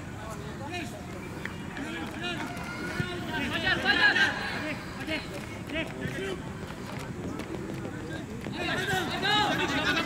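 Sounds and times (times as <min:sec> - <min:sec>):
open-air background noise: 0:00.0 - 0:10.0
people calling out and chatting: 0:00.0 - 0:10.0.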